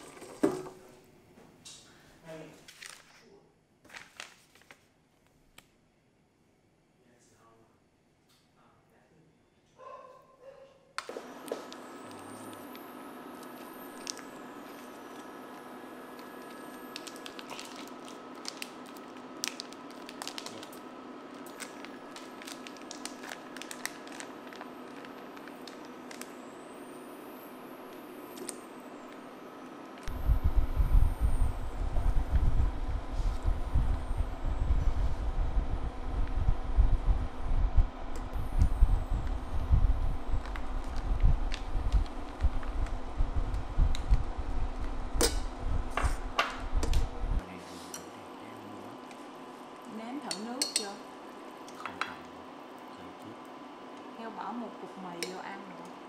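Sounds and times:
induction cooktop fan humming: 0:00.0 - 0:04.3, 0:10.9 - 0:56.0
irregular low rumble: 0:30.1 - 0:47.4.

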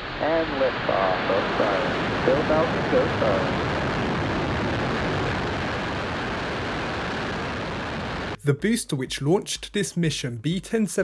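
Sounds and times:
rocket engines rumbling: 0:00.0 - 0:08.4.

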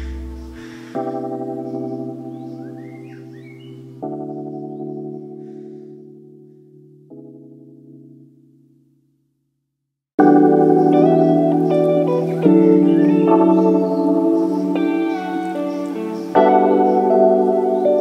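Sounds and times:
slow sustained keyboard chords: 0:00.0 - 0:09.1, 0:10.2 - 0:18.0.

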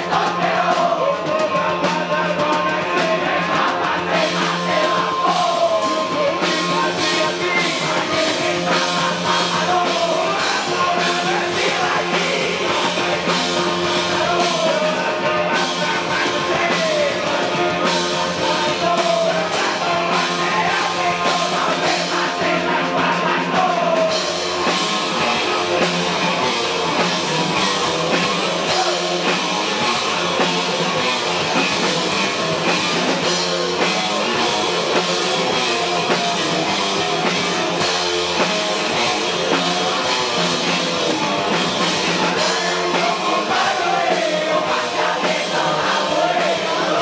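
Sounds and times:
live rock band playing: 0:00.0 - 0:47.0
person singing: 0:00.0 - 0:47.0.

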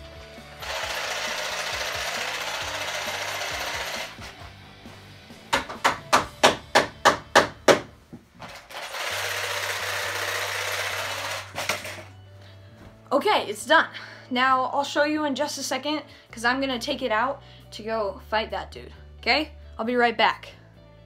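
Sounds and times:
power tool running: 0:00.4 - 0:04.3, 0:08.5 - 0:12.1.

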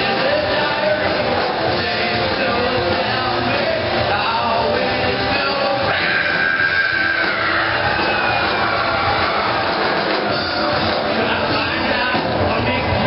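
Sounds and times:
rock band with electric guitar: 0:00.0 - 0:13.0.

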